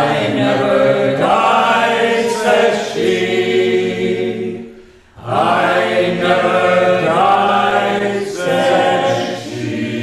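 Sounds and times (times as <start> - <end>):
group singing without accompaniment: 0.0 - 10.0.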